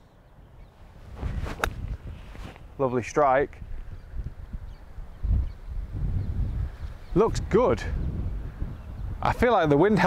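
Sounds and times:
wind buffeting microphone: 0:00.5 - 0:10.0.

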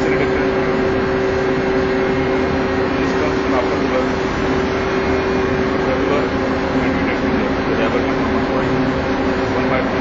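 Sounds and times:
marine diesel engine running: 0:00.0 - 0:10.0.

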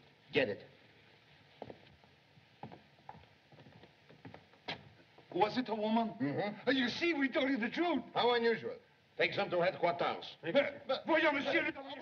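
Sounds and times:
old film soundtrack hiss: 0:00.0 - 0:12.0
faint footsteps on hard floor: 0:01.2 - 0:05.4.

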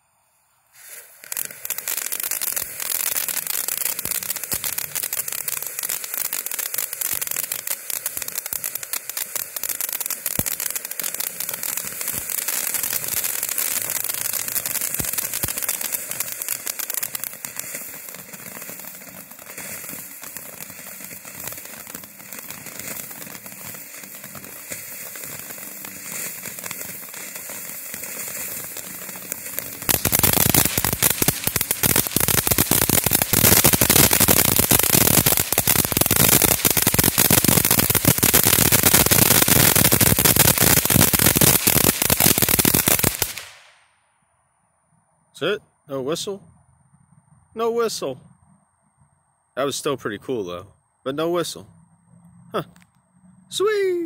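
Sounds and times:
firework fountain crackling: 0:00.0 - 0:44.0.

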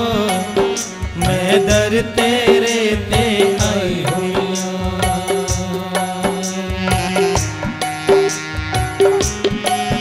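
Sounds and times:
man singing: 0:00.0 - 0:07.9
regular drum beat: 0:00.0 - 0:10.0.

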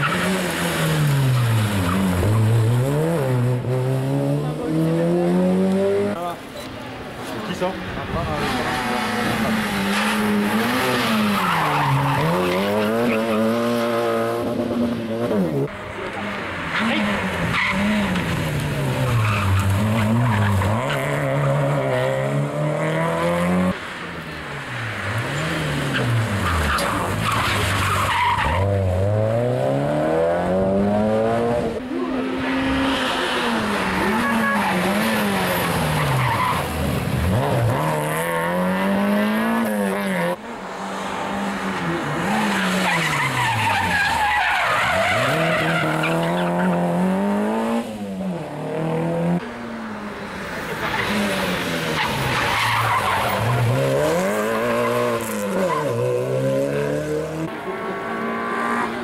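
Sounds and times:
tyres squealing and skidding: 0:00.0 - 0:03.3, 0:08.2 - 0:13.8, 0:15.4 - 0:22.3, 0:24.6 - 0:29.3, 0:31.9 - 0:38.6, 0:41.6 - 0:47.2, 0:50.6 - 0:56.7
rally car engines revving: 0:00.0 - 0:59.0.

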